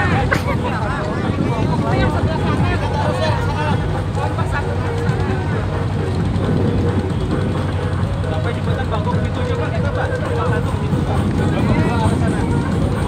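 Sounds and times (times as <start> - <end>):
boat engine humming: 0.0 - 13.0
indistinct voices chattering: 0.0 - 13.0.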